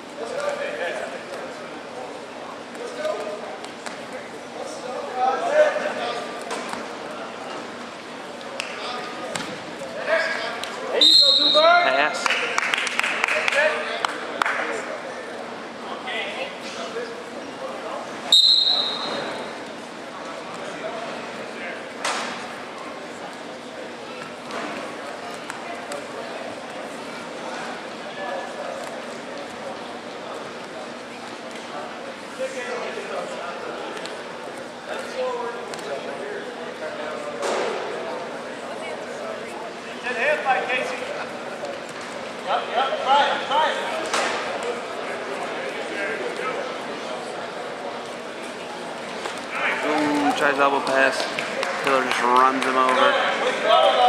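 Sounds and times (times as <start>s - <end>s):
gym chatter: 0.0s - 54.0s
referee's whistle blast: 11.0s - 11.8s, 18.3s - 19.4s.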